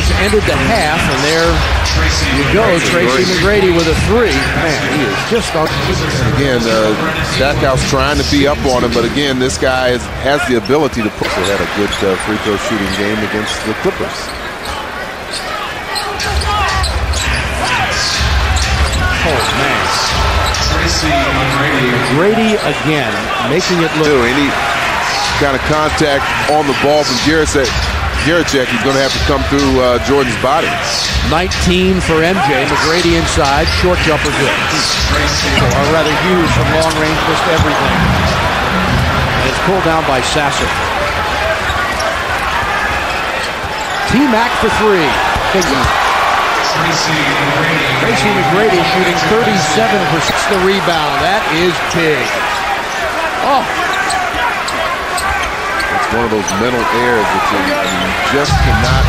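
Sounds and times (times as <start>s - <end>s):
arena crowd noise: 0.0s - 59.0s
sneakers squeaking: 10.6s - 22.9s, 32.5s - 46.5s, 51.8s - 59.0s.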